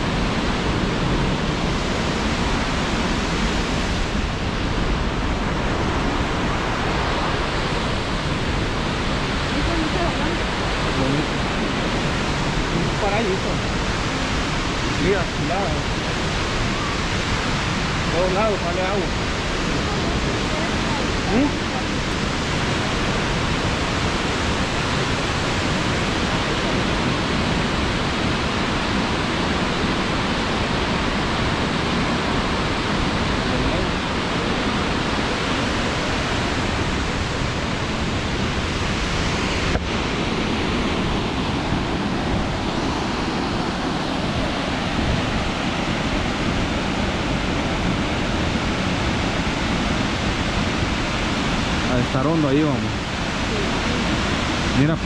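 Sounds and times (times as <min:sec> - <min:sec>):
waterfall rushing: 0:00.0 - 0:55.0.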